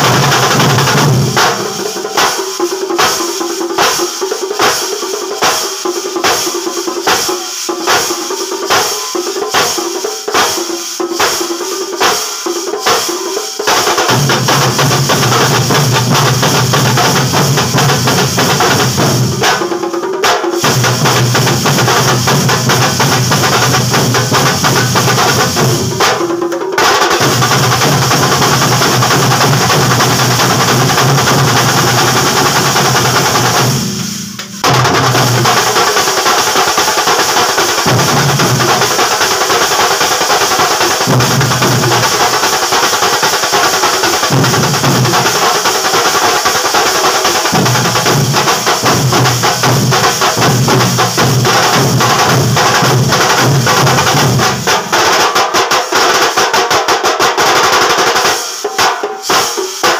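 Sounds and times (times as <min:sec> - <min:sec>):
large bass drum: 0:00.0 - 0:02.4, 0:14.0 - 0:19.8, 0:20.6 - 0:26.3, 0:27.2 - 0:36.0, 0:47.5 - 0:54.8
drum band playing fast rhythm: 0:00.0 - 0:59.9.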